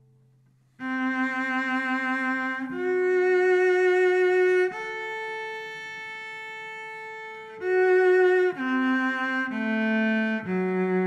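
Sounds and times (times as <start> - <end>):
cello bowed note: 0.8 - 11.0.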